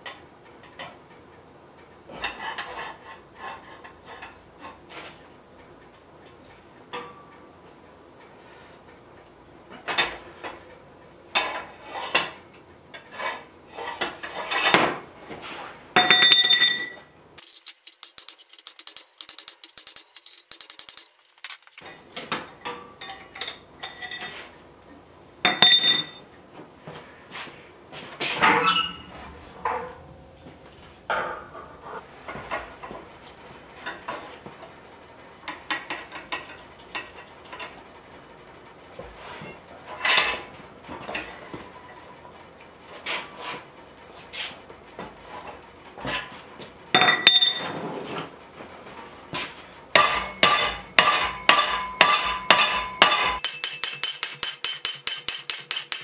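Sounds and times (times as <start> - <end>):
metal clanks and clinks: 16.0 - 24.4, 25.4 - 26.3, 39.4 - 41.5, 46.9 - 47.7, 49.9 - 56.0.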